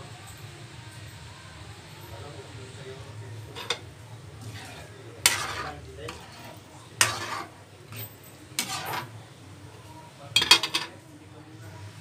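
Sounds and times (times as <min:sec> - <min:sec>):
ladle scraping a pan: 0:03.4 - 0:09.2, 0:10.4 - 0:11.0
ladle clinking: 0:10.4 - 0:11.0.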